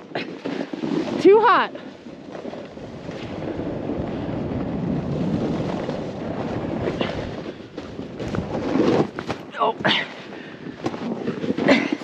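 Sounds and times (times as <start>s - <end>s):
snowboard scraping over snow: 0.1s - 12.0s.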